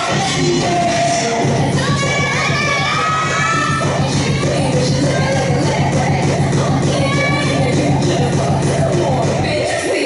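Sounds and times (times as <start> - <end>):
dance music: 0.0 - 10.0
children shouting and cheering: 1.7 - 5.5, 6.8 - 7.8.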